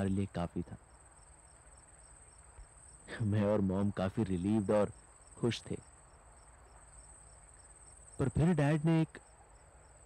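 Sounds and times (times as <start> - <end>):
faint crickets chirping: 0.0 - 10.0.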